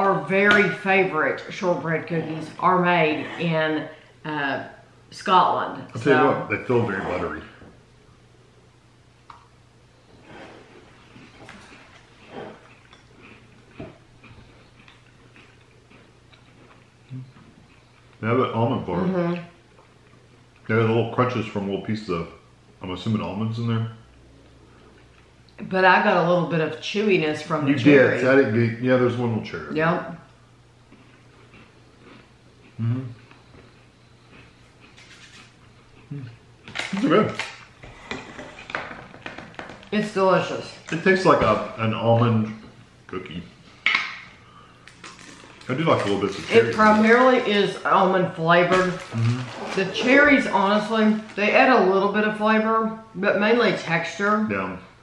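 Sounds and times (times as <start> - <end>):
shortbread crunching while chewed: 11.1 - 18.2, 30.9 - 37.7.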